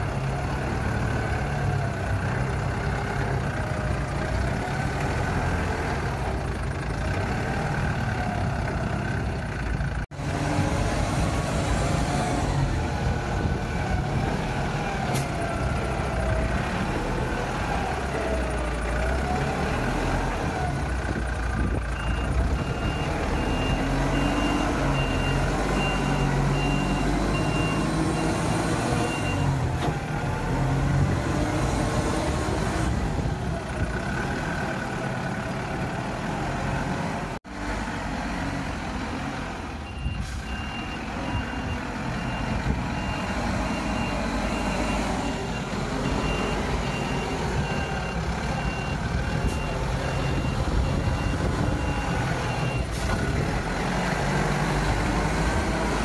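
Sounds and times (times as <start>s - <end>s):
forklift engine running: 0.0s - 56.0s
reversing alarm beeping: 21.9s - 29.6s, 39.8s - 52.9s.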